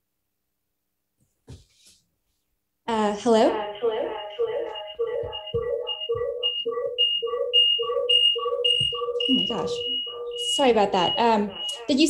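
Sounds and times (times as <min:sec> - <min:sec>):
pulsing electronic feedback tone: 0:03.6 - 0:12.0.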